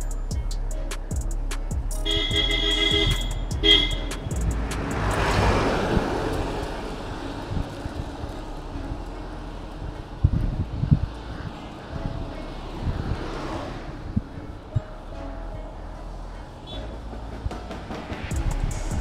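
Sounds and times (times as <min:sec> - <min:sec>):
background music: 0:00.0 - 0:19.0
wind and road noise: 0:00.0 - 0:19.0
vehicle passing: 0:01.4 - 0:19.0
vehicle horn beeps: 0:02.0 - 0:04.2.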